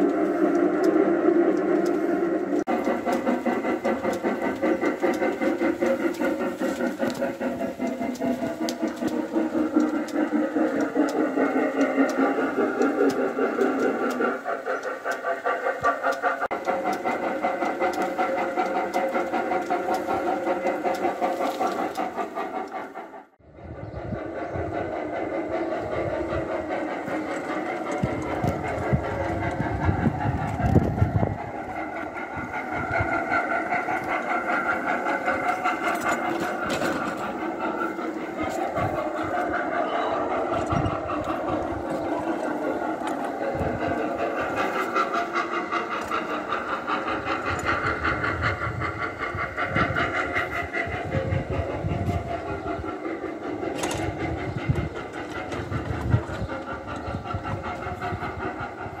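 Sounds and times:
rapid wheel clatter: 0.0 - 23.4, 24.2 - 59.0.

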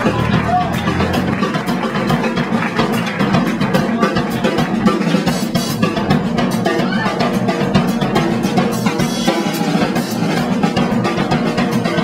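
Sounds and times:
band low backing: 0.0 - 12.0
drum kit hits: 0.0 - 12.0.

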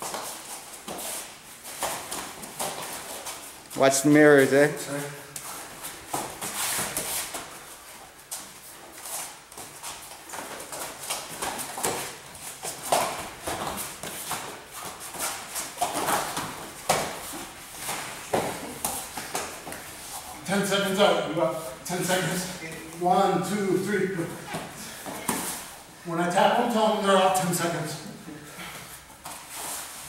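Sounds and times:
bodies scuffling on foam mats: 0.0 - 3.7, 5.4 - 23.4, 24.2 - 25.9.

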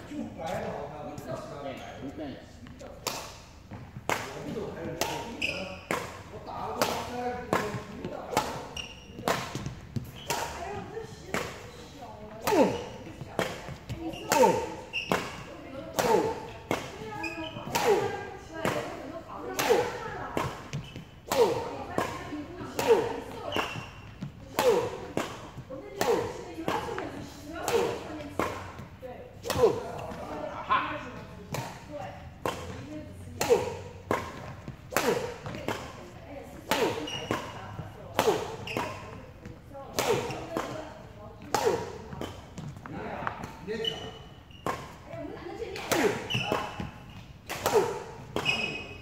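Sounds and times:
rackets striking shuttlecocks: 2.7 - 11.7, 12.3 - 30.3, 31.2 - 49.0
short falling squeaks: 14.9 - 15.4.

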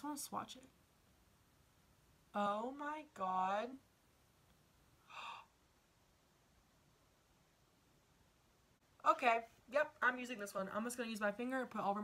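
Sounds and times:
woman gasping: 5.0 - 5.5.

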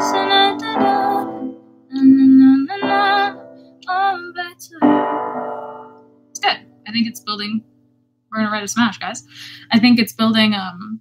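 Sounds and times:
keyboard notes: 0.0 - 3.7, 4.8 - 6.9
woman singing wordless melody: 0.0 - 7.4.

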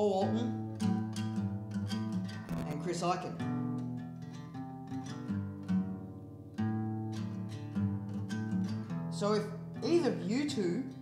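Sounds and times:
acoustic guitar chords: 0.0 - 11.0.

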